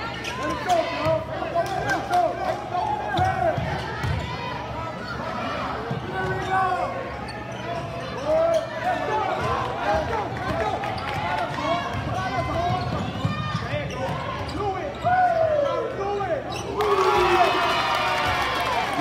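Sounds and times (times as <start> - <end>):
voices of players and spectators: 0.0 - 19.0
sneakers squeaking on floor: 5.8 - 9.5, 11.8 - 15.2, 16.4 - 16.8.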